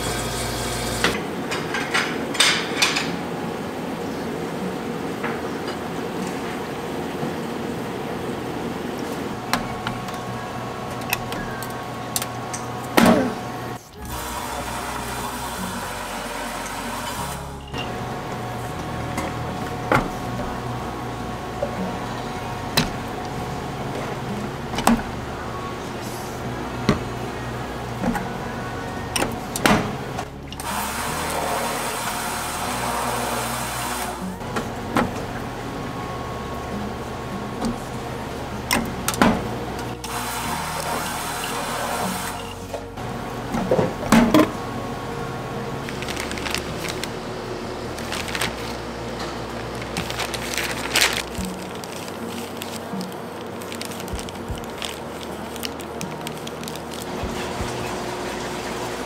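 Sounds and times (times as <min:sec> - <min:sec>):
can-sealing machine running: 0:00.0 - 0:01.2, 0:09.4 - 0:20.9, 0:29.1 - 0:35.2, 0:45.4 - 0:59.0
soft background music: 0:00.0 - 0:59.0.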